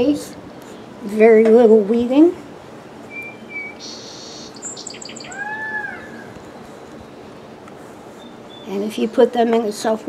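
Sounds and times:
high bird chirps: 3.1s - 7.2s, 8.2s - 8.8s
rising and falling bird call: 3.1s - 7.4s.

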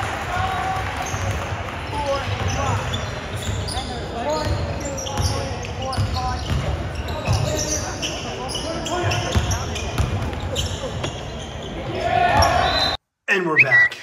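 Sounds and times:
voices in large hall: 0.0s - 14.0s.

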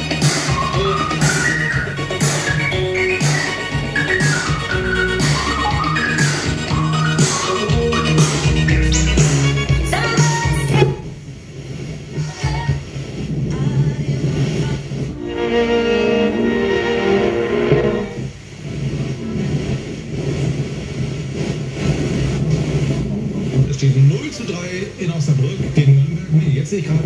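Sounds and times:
music from radio: 0.0s - 27.0s.

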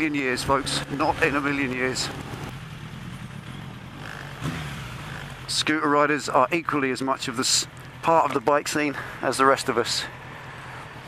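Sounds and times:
motorcycle engine at low revs: 0.0s - 9.3s
wind and road noise: 0.0s - 11.0s.

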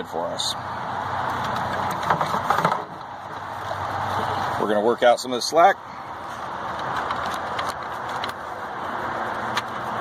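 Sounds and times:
engine-like hum: 0.0s - 10.0s
light clicks and rustles: 6.3s - 8.6s.

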